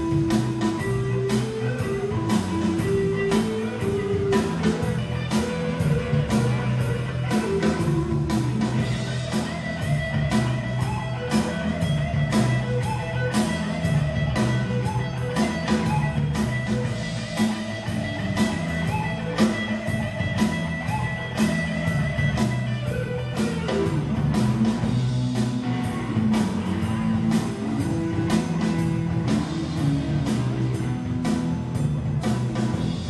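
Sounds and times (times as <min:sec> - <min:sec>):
blues band playing: 0:00.0 - 0:33.0
electric guitar: 0:00.0 - 0:33.0
steady drum beat: 0:00.0 - 0:33.0.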